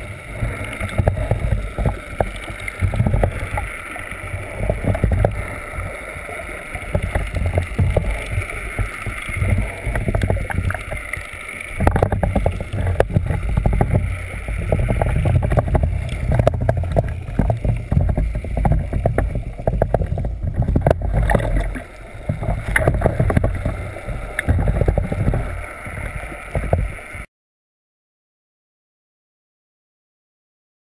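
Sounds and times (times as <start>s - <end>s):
underwater water sloshing and bubbling: 0.0s - 27.3s.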